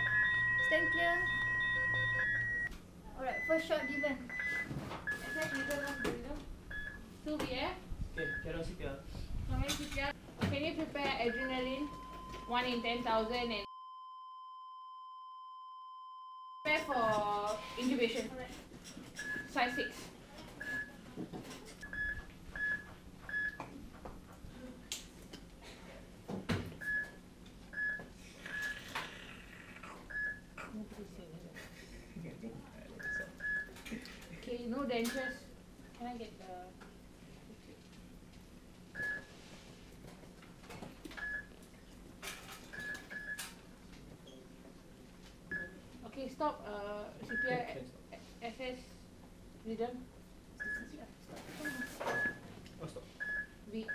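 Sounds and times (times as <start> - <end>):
high medical monitor beeps: 0.0 - 2.7, 3.3 - 7.0, 11.2 - 18.0, 19.2 - 20.0, 20.6 - 20.9
steady electronic alarm tone: 0.0 - 2.7, 11.3 - 16.9.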